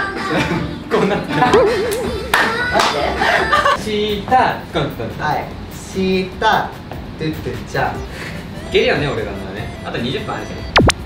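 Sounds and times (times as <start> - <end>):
lively talk: 0.9 - 10.8
sharp hand claps: 1.9 - 3.0.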